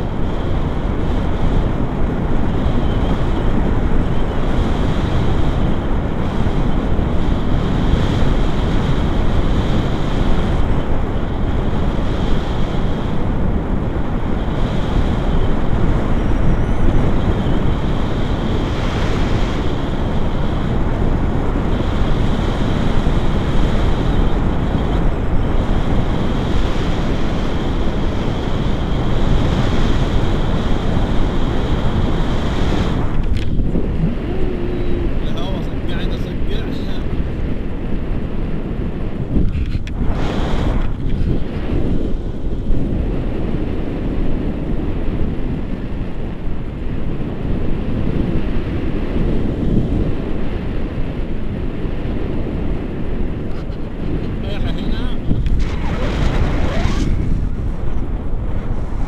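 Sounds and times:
wind blowing over microphone: 0:00.0 - 0:59.0.

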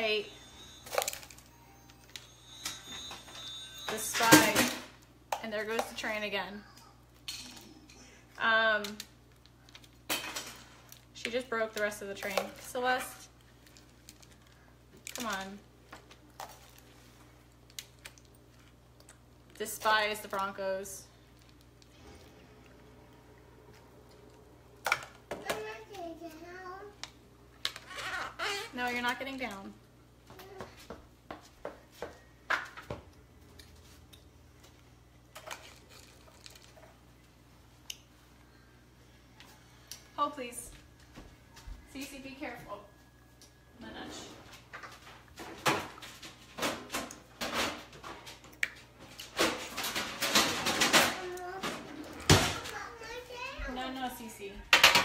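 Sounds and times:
kitchen knocks and clatters: 0:02.6 - 0:06.0, 0:44.5 - 0:52.8, 0:54.6 - 0:55.0
toddler shouting: 0:52.7 - 0:53.8.

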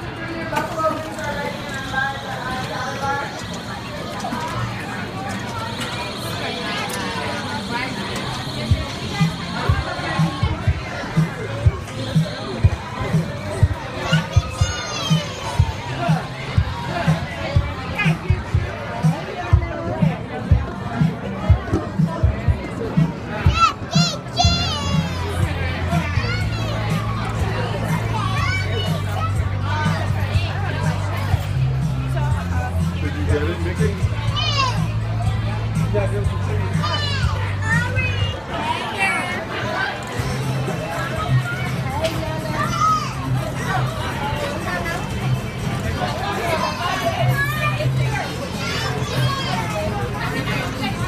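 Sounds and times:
children calling and chattering: 0:00.0 - 0:51.0
faint music: 0:00.0 - 0:51.0
children shrieking: 0:42.5 - 0:43.4.

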